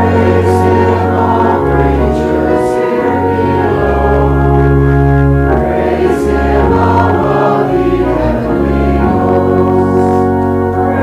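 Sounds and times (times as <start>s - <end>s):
choir singing a hymn: 0.0s - 11.0s
organ chords: 0.0s - 11.0s.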